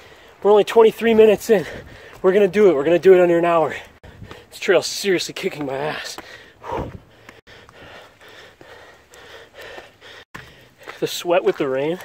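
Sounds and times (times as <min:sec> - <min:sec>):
man breathing heavily: 0:00.0 - 0:00.4, 0:01.4 - 0:02.3, 0:03.6 - 0:04.6, 0:05.8 - 0:11.0.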